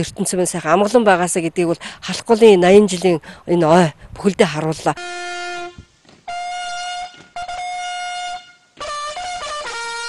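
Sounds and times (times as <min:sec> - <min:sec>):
bugle call on trumpet: 0:05.0 - 0:10.0.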